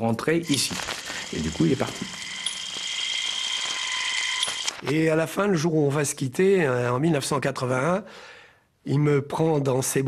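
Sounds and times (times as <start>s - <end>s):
high-pitched whine: 0.4s - 4.8s.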